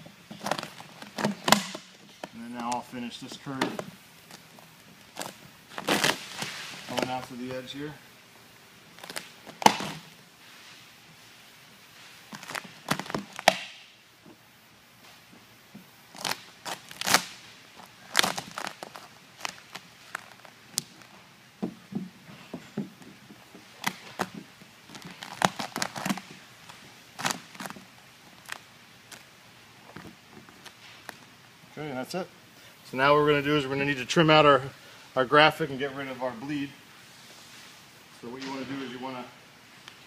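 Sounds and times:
vinyl film crinkling and snapping: 0.2s - 7.3s, 8.9s - 10.2s, 12.2s - 13.8s, 16.1s - 21.2s, 23.0s - 31.3s.

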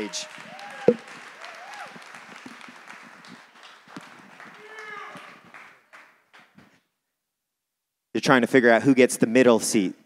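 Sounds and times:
congregation clapping: 0.0s - 6.6s.

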